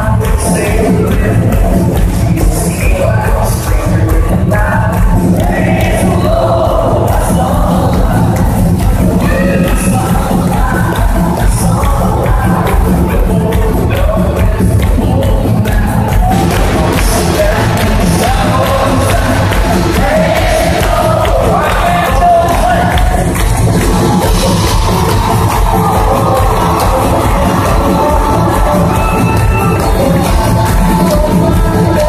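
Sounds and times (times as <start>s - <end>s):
crowd voices: 0.0s - 32.0s
live band music with vocals: 0.0s - 32.0s.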